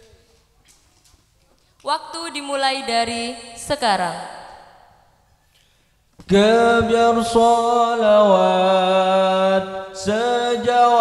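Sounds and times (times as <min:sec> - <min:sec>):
amplified man's voice with echo: 0:06.2 - 0:11.0.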